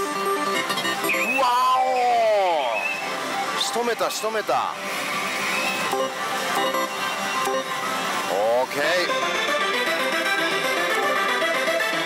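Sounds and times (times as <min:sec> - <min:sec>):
electronic machine jingles and music: 0:00.0 - 0:01.4, 0:05.2 - 0:09.7.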